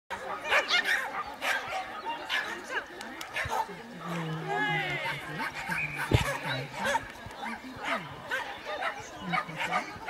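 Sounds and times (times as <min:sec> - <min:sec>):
dog barking: 0:00.1 - 0:03.8, 0:05.0 - 0:10.0.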